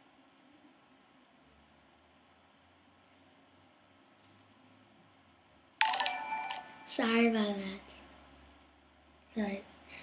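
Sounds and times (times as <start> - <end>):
electronic chime: 5.8 - 7.2.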